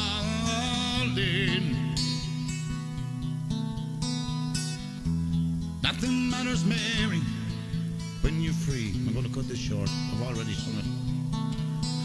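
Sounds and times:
man singing a folk ballad: 0.0 - 2.9, 5.8 - 11.2
strummed acoustic guitar: 0.0 - 12.0.

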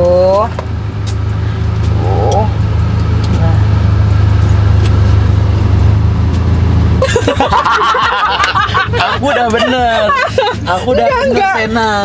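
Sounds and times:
car engine idling: 0.0 - 12.0
voices: 1.8 - 3.8, 7.6 - 12.0.

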